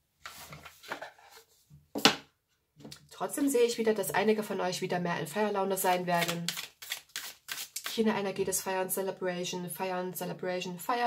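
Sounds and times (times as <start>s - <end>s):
handling rustles and taps: 0.2s - 3.0s.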